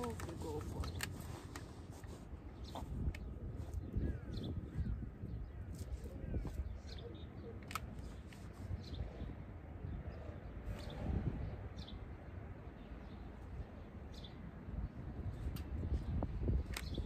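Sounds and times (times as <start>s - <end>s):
wind rumbling on microphone: 0.0s - 17.0s
light clicks: 7.6s - 8.5s.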